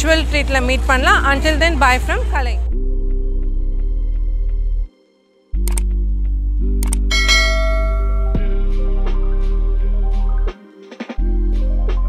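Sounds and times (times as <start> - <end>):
low synth drone: 0.8 - 10.5
bell-like notification chime: 7.1 - 8.4.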